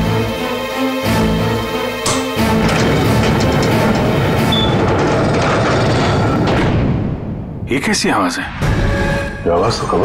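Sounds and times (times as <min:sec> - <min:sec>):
tense background music: 0:00.0 - 0:10.0
door mechanism rumbling: 0:01.9 - 0:07.6.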